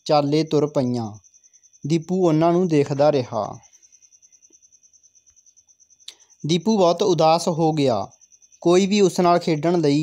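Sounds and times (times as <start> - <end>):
faint high-pitched pulsing trill: 0.0 - 10.0.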